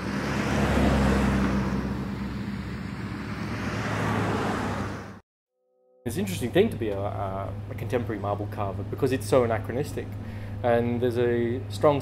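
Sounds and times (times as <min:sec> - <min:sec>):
cars rushing past: 0:00.0 - 0:05.2
low steady hum: 0:06.1 - 0:12.0.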